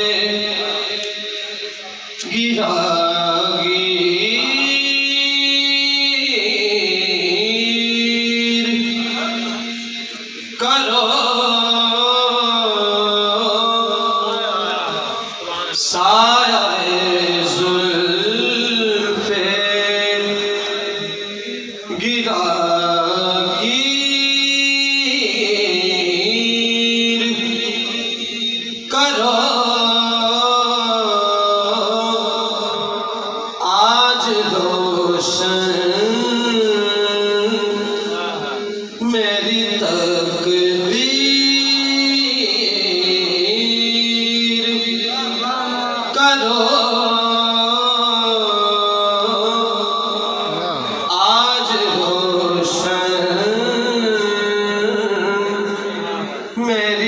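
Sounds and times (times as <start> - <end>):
man singing into microphone: 0.0 - 57.0.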